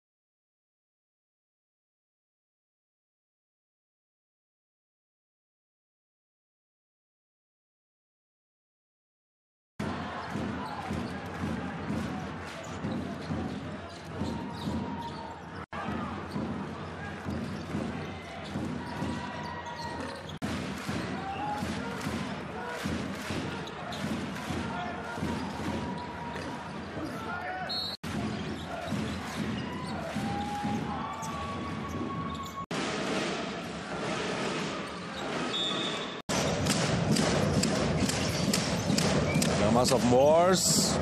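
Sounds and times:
arena crowd noise: 0:09.8 - 0:41.0.

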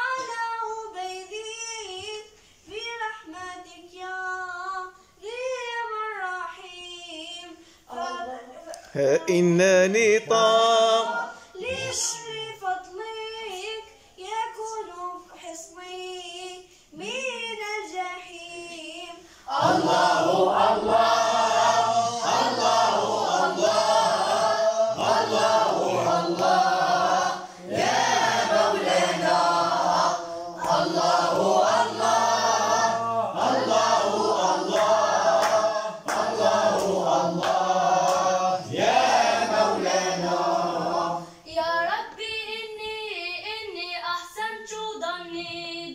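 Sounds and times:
boy singing unaccompanied: 0:00.0 - 0:19.2
singer breathing: 0:02.3 - 0:02.7, 0:07.6 - 0:07.9, 0:19.2 - 0:19.5
boys singing in unison: 0:06.5 - 0:13.6, 0:17.8 - 0:42.2.

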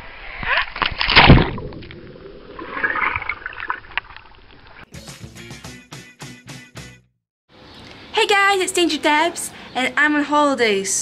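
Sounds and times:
splash into swimming pool: 0:00.5 - 0:04.0.

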